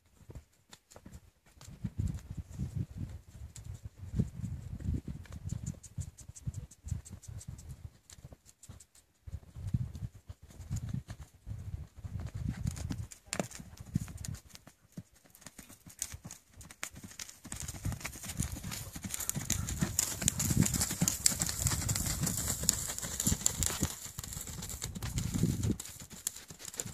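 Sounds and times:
hooves beating on dirt: 0.0 - 26.9.

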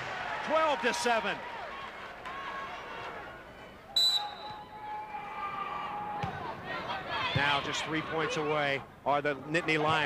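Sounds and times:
arena crowd noise: 0.0 - 10.0
referee whistle blowing: 3.9 - 4.9.

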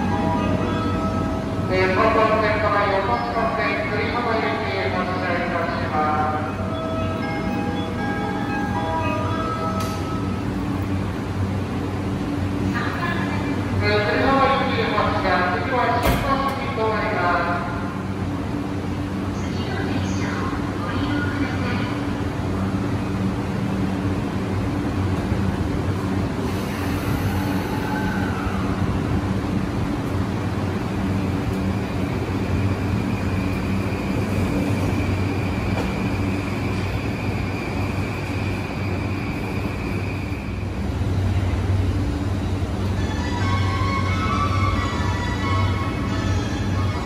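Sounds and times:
electrical hum of train: 0.0 - 47.0.

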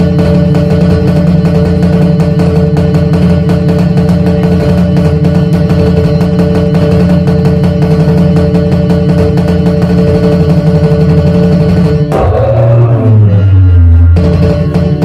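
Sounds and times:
electronic drum pattern with bass: 0.0 - 15.0
keyed banjo strummed fast: 0.0 - 15.0.

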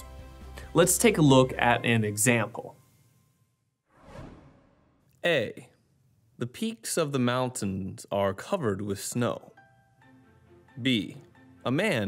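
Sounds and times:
whoosh transition: 3.9 - 5.0.

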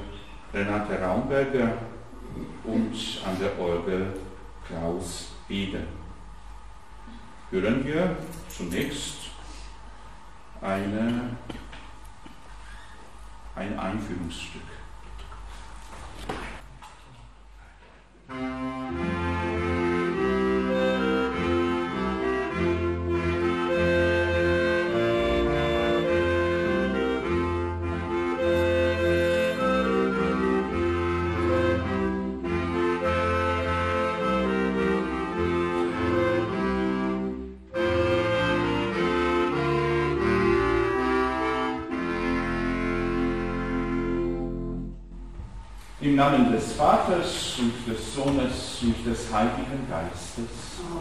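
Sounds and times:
double bass: 0.0 - 8.6, 18.3 - 51.0.

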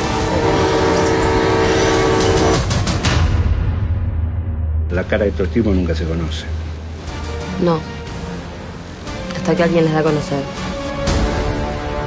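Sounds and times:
locomotive rumble: 0.0 - 2.7
locomotive horn chord: 0.0 - 2.9.

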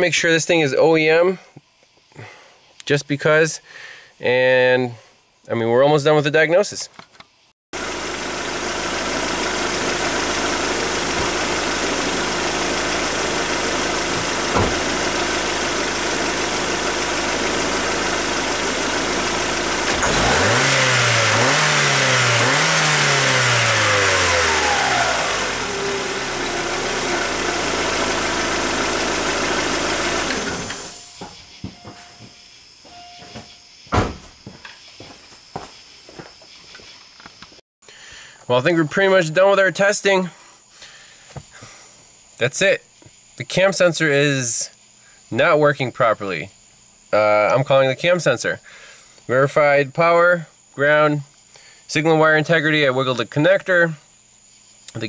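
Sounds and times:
car engine running and revving: 7.8 - 31.2.

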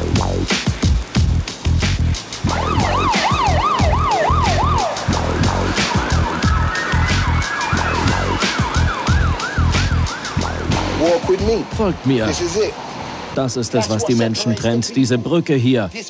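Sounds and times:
music with heavy beat: 0.0 - 12.0
siren yelping: 2.4 - 10.8.

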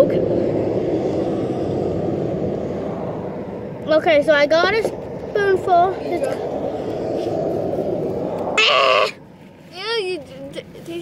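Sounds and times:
passing vehicle rumble: 0.0 - 11.0.

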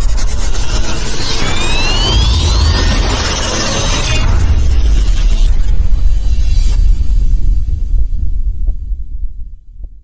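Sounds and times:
heavy bass rumble: 0.0 - 10.0
rising sweep: 0.4 - 6.8.

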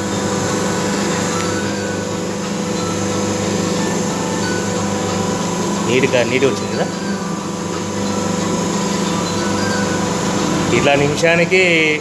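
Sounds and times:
paper plate machine motor hum: 0.0 - 12.0.

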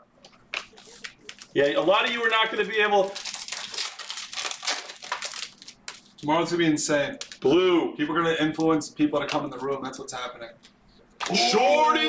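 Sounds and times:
foil wrapper crinkling and tearing: 0.5 - 6.2, 7.1 - 7.4.

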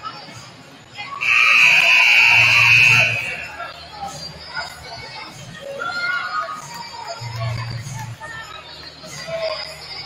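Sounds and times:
scoreboard horn blast: 1.2 - 3.5.

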